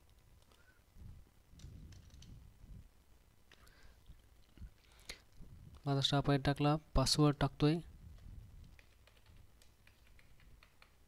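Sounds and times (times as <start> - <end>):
soft keyboard typing: 0.0 - 0.8, 1.5 - 2.4, 8.2 - 11.0.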